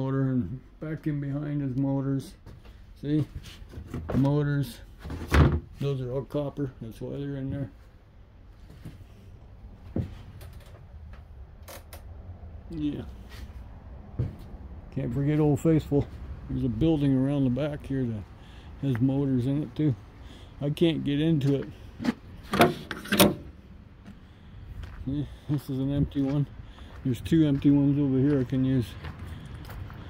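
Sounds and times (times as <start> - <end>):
footsteps on gravel: 24.0 - 30.0.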